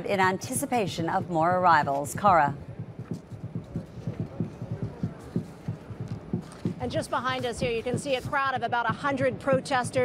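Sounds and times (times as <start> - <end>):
low dull thuds: 2.3 - 10.0.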